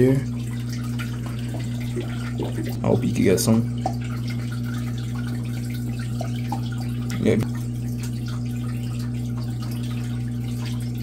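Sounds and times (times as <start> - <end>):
aquarium equipment humming: 0.0 - 11.0
water trickling: 0.0 - 11.0.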